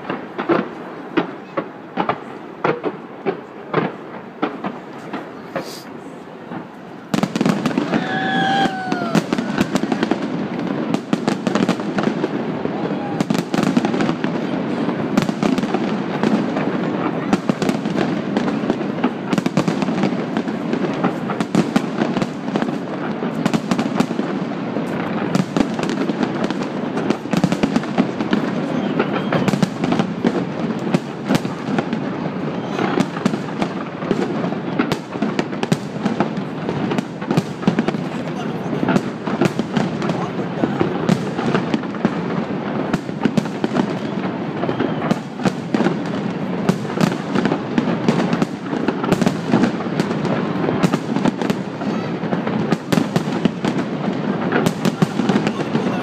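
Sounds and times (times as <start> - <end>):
fireworks crackling and banging: 0.0 - 56.0
people's voices: 0.7 - 10.8, 12.5 - 15.2, 28.3 - 29.6, 32.4 - 33.2, 37.6 - 41.8, 51.4 - 52.8, 54.4 - 56.0.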